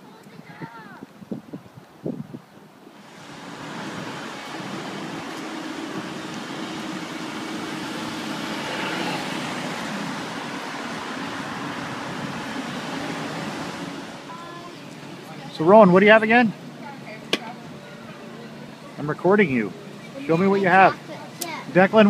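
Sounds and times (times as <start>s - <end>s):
passing cars: 2.7s - 22.0s.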